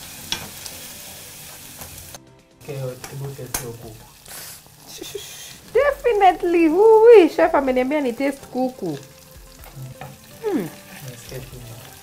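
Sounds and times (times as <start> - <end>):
chicken sizzling in a saucepan: 0.0 - 12.0.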